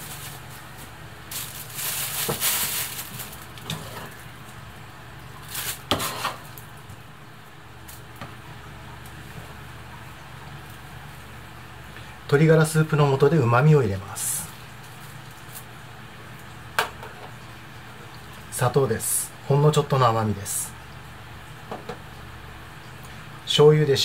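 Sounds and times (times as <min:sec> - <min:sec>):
plastic bag rustling: 0:00.0 - 0:04.6, 0:05.4 - 0:06.7
low steady hum: 0:00.0 - 0:24.0.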